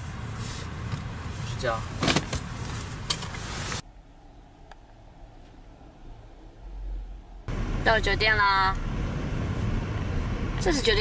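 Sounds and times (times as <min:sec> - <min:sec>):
clunk and rattle: 0:02.0 - 0:03.4.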